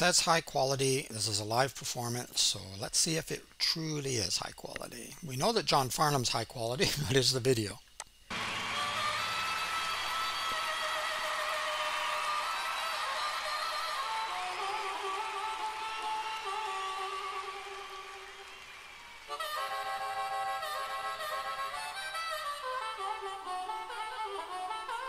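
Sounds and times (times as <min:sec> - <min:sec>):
solo harmonica playing: 0:08.3 - 0:25.0.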